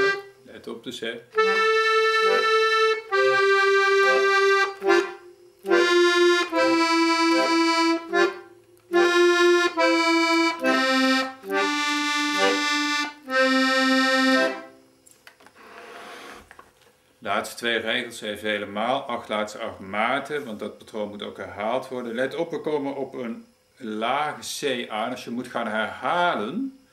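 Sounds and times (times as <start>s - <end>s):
accordion playing slow tune: 0.0s - 0.4s, 1.3s - 15.0s.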